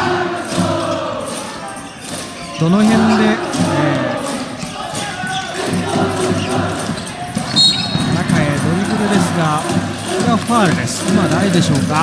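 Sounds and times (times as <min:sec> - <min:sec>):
arena crowd noise: 0:00.0 - 0:12.0
referee whistle blast: 0:07.5 - 0:08.2.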